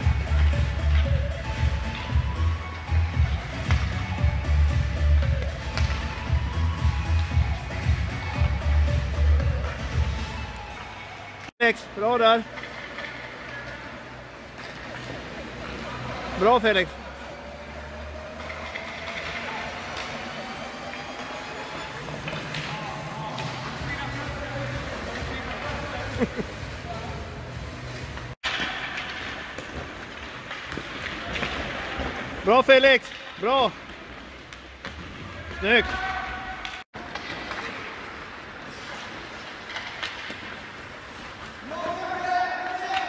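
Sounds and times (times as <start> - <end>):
ice skates scraping: 12.4 - 32.4, 33.2 - 43.0
skate blades scraping on ice: 37.1 - 43.0.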